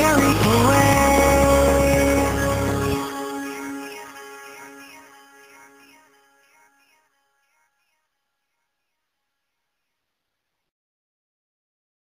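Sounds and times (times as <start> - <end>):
deep bass: 0.0 - 3.0
song: 0.0 - 6.1.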